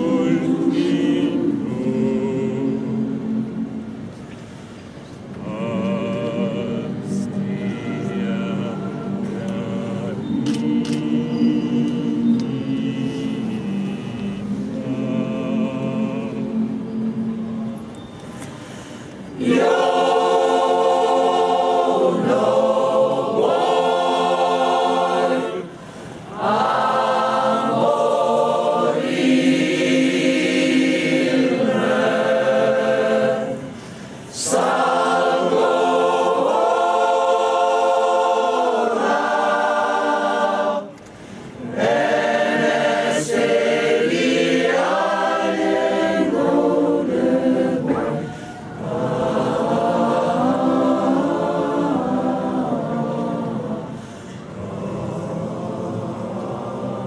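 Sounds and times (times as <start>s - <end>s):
mixed choir singing a cappella: 0.0s - 57.0s.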